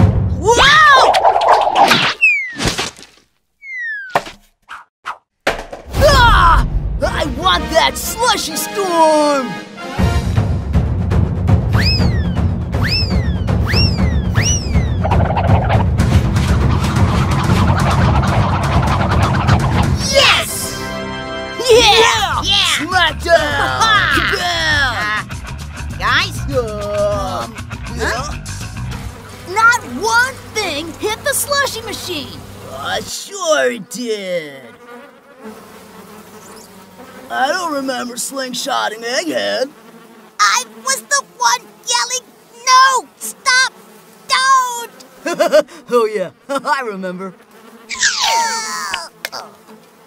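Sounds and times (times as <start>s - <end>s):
flies buzzing: 0.8s - 2.6s, 7.4s - 10.7s, 11.5s - 50.0s
squeaky cartoon whistles: 1.6s - 2.6s, 3.6s - 4.2s, 11.7s - 15.2s.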